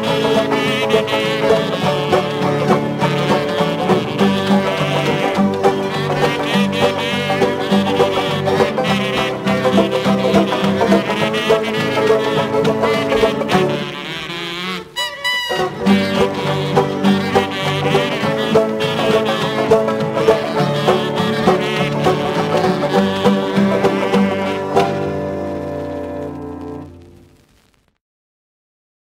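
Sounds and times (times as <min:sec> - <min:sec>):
banjos playing bouncy tune: 0:00.0 - 0:27.0.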